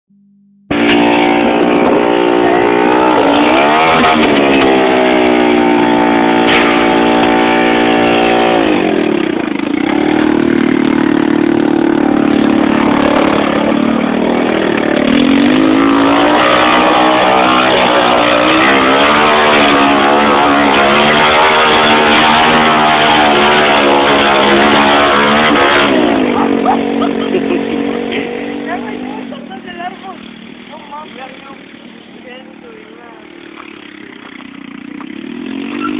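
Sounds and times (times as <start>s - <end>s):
quad bike engine revving: 0.7s - 35.9s.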